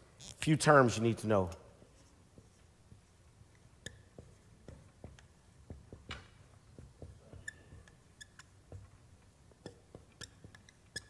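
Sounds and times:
marker squeaking on whiteboard: 0:00.2 - 0:00.4, 0:01.8 - 0:11.0
marker tapping on whiteboard: 0:03.8 - 0:11.0.

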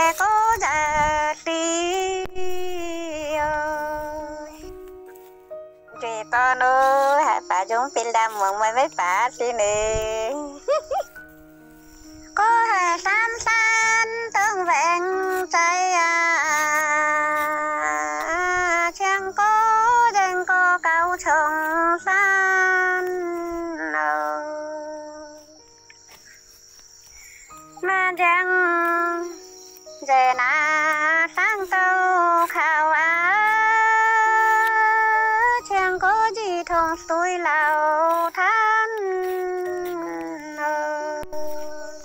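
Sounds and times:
woman singing folk song: 0:00.0 - 0:04.7, 0:05.9 - 0:11.0, 0:12.4 - 0:25.6, 0:27.7 - 0:42.0.

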